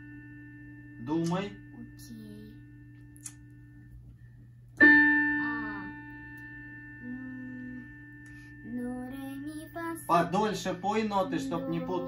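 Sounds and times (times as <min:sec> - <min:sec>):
digital piano note: 0:00.0 - 0:03.9, 0:04.8 - 0:12.0
child singing softly: 0:01.7 - 0:02.7, 0:05.4 - 0:06.1, 0:07.0 - 0:12.0.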